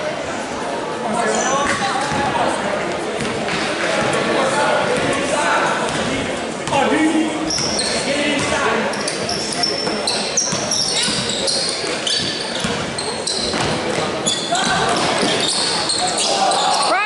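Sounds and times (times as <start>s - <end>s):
spectators' voices and shouts: 0.0s - 17.0s
sneakers squeaking on hardwood: 7.4s - 16.9s
basketball dribbling: 10.5s - 11.4s.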